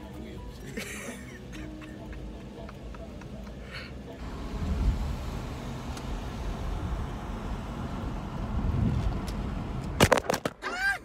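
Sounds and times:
car engine and road noise: 0:00.0 - 0:10.6.

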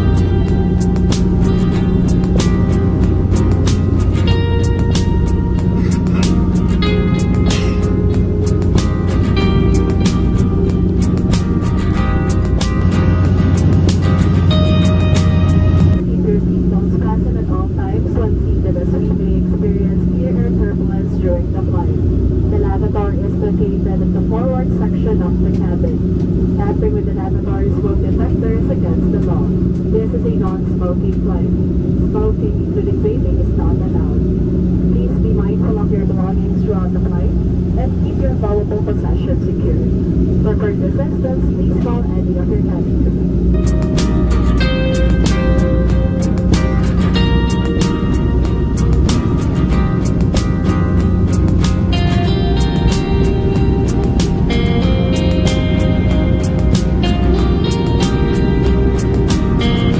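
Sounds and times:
music with a beat: 0:00.0 - 0:16.0, 0:43.6 - 0:59.9
airliner cabin drone: 0:00.0 - 0:59.9.

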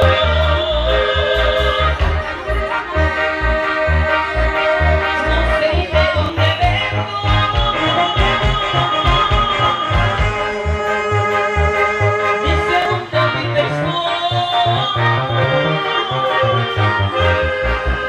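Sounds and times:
live dance band playing: 0:00.0 - 0:18.0.

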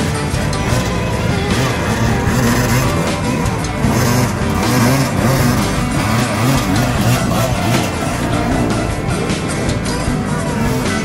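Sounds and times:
dirt bike engines revving: 0:00.0 - 0:11.0
music playing: 0:00.0 - 0:11.0.

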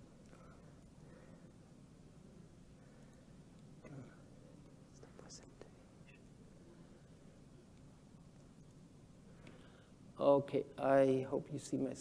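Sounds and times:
soft breathy hiss: 0:00.0 - 0:12.0.

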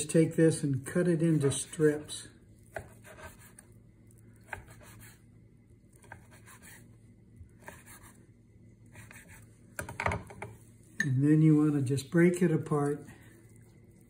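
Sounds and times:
knife slicing on cutting board: 0:02.6 - 0:03.6, 0:04.4 - 0:05.2, 0:06.0 - 0:06.8, 0:07.6 - 0:08.2, 0:08.9 - 0:09.5.

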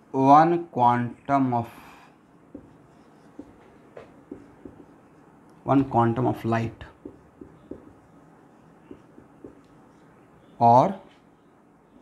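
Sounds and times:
marker writing on whiteboard: 0:02.2 - 0:10.5
marker taps: 0:02.5 - 0:08.2, 0:08.8 - 0:09.8.

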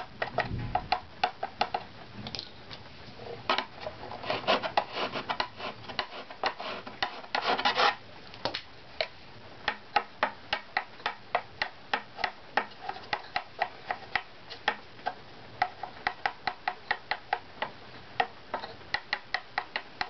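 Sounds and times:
stick tapping wooden plate: 0:00.0 - 0:02.5, 0:03.5 - 0:20.0
steel scraper rasping on wood: 0:04.1 - 0:08.0.

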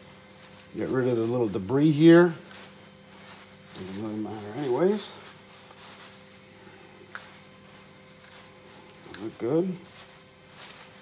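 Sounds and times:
faint steady hum: 0:00.0 - 0:11.0
rubbing rubber in hands: 0:02.4 - 0:11.0.

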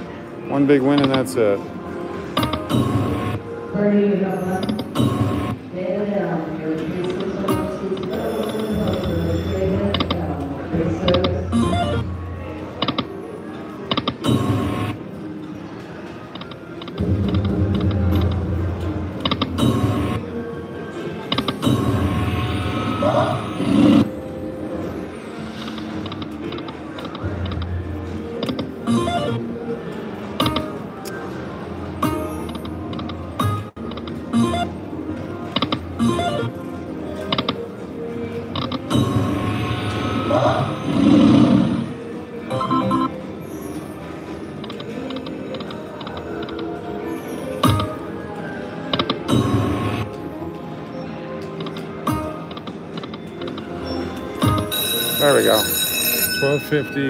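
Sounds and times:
slot machine electronic music: 0:02.2 - 0:03.6, 0:04.4 - 0:05.7, 0:07.0 - 0:15.2, 0:16.2 - 0:51.0, 0:51.6 - 0:57.0.

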